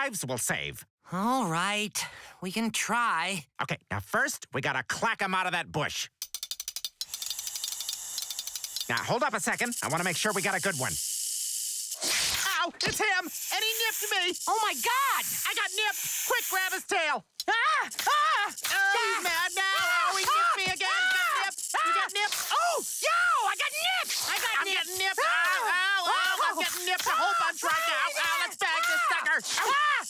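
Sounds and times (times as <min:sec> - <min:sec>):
metal tongs clacking: 0:06.2 - 0:09.1
hiss: 0:11.8 - 0:12.5, 0:13.2 - 0:16.8
cartoon voices yelping and wailing: 0:12.3 - 0:30.0.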